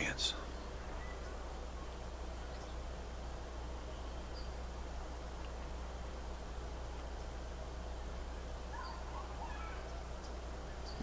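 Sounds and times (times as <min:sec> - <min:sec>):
faint bird chirps: 0:00.0 - 0:05.7, 0:06.9 - 0:11.0
low hum and hiss: 0:00.0 - 0:11.0.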